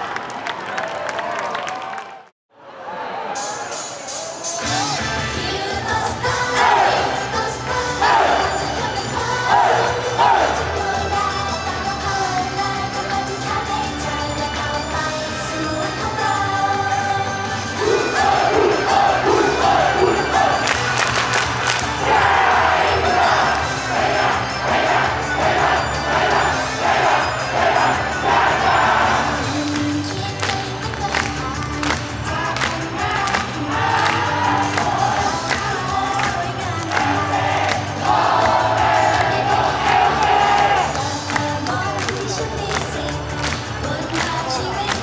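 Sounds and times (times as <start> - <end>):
pop song over loudspeakers: 3.2 - 45.0
girl group singing live: 5.3 - 20.7, 22.1 - 45.0
crowd shouting along: 6.2 - 11.1, 17.7 - 29.4, 33.0 - 41.1.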